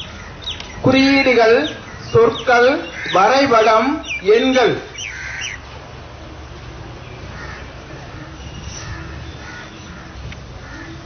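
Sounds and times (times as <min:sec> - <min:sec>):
crows cawing: 0:00.0 - 0:05.7, 0:07.3 - 0:11.0.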